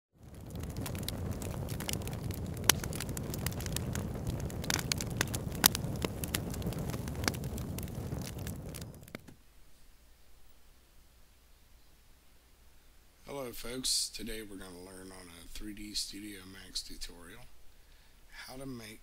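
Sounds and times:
campfire crackling and popping: 0.1s - 9.4s.

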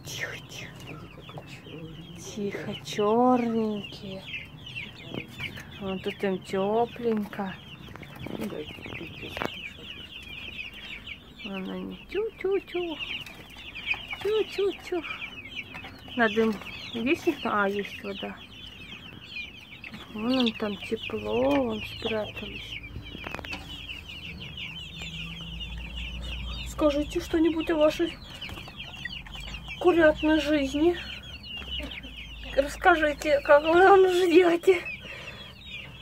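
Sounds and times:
chicks peeping: 0.0s - 36.0s.

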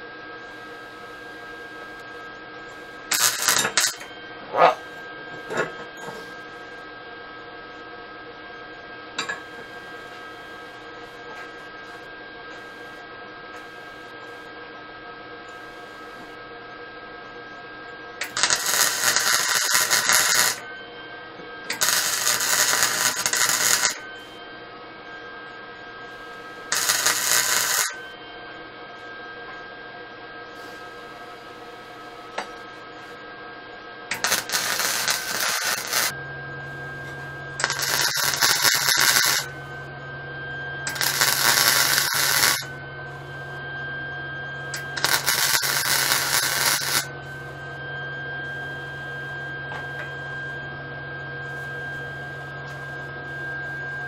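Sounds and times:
welder arc crackling: 3.0s - 4.0s, 18.2s - 20.6s, 21.7s - 24.1s, 26.6s - 28.0s, 34.1s - 36.2s, 37.6s - 39.5s, 40.9s - 42.7s, 44.7s - 47.1s.

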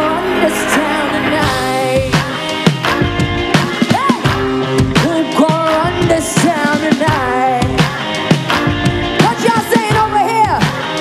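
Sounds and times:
woman singing into microphone: 0.0s - 2.6s, 3.7s - 8.3s, 9.2s - 11.0s
deep bass: 0.0s - 6.5s
band backing music: 0.0s - 11.0s.

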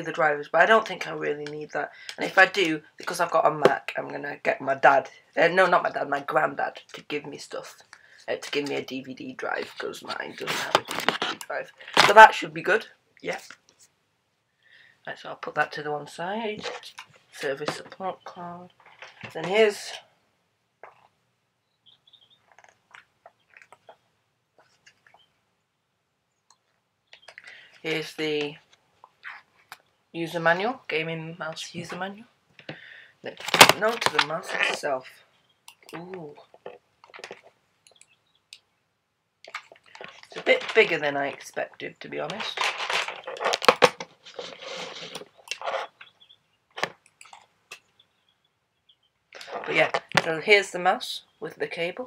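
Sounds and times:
paper and cardboard rustling: 9.6s - 12.4s, 33.3s - 34.9s, 39.5s - 46.1s
packaging crinkling: 33.4s - 34.8s, 39.5s - 41.5s, 42.3s - 46.1s.

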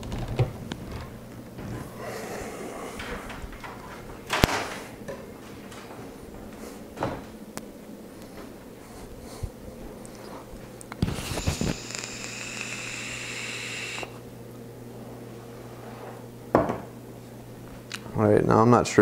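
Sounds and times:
steady high hiss: 10.9s - 14.2s.

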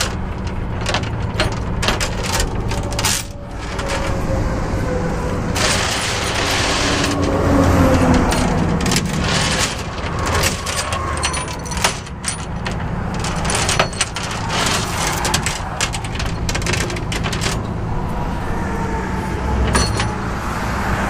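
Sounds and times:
metal chains clinking and rattling: 0.0s - 4.4s, 5.5s - 18.3s, 19.6s - 20.3s.

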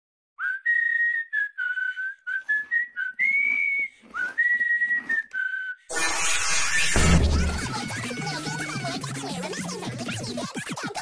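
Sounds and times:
person whistling a tune: 0.4s - 5.9s.

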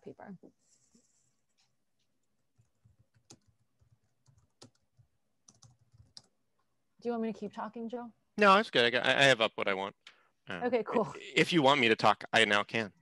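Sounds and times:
computer keyboard typing: 2.3s - 6.4s.

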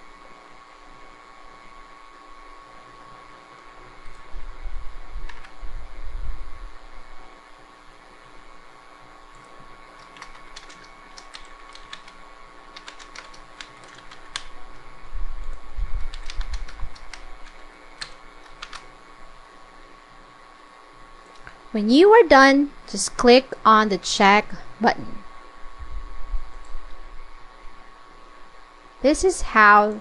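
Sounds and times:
steady machine hum: 0.0s - 30.0s
keyboard key clicks: 16.1s - 18.8s.

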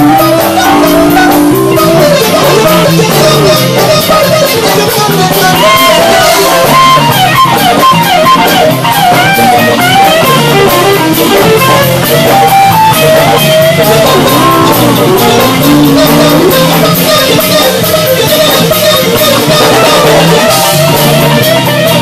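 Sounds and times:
blues band playing: 0.0s - 22.0s
electric guitar lead: 0.0s - 22.0s.

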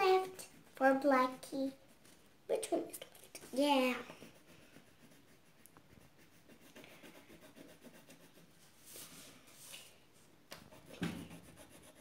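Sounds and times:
pencil scratching on paper: 0.0s - 2.2s, 3.6s - 8.6s, 10.6s - 12.0s.

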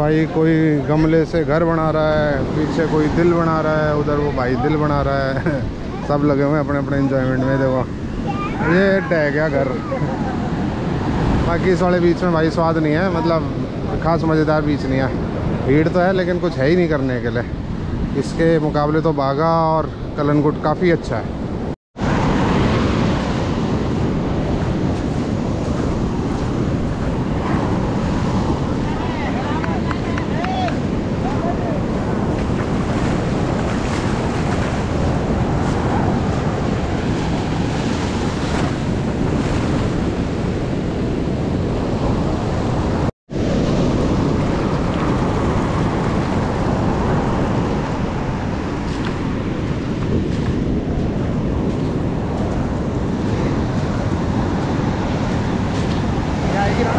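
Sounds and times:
surf breaking on beach: 0.0s - 18.8s, 21.6s - 56.9s
wind buffeting microphone: 0.0s - 56.9s.

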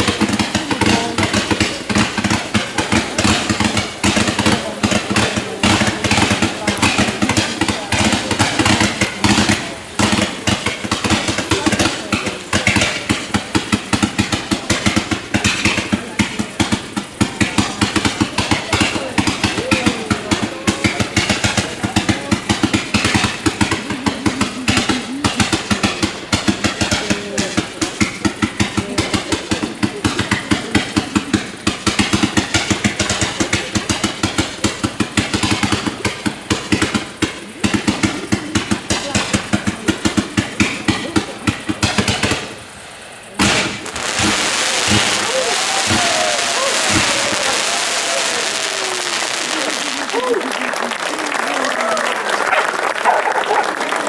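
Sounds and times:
fireworks reports and crackles: 0.0s - 54.0s.

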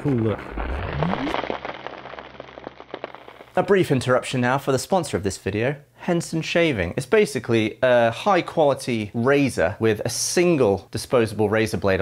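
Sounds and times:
short rising sweep: 0.0s - 3.5s
dense crackling patter: 0.0s - 4.6s.

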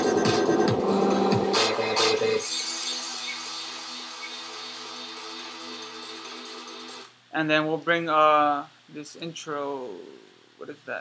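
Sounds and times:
sustained synth pad chord: 0.0s - 5.8s
dubstep music with drums: 0.0s - 7.1s.

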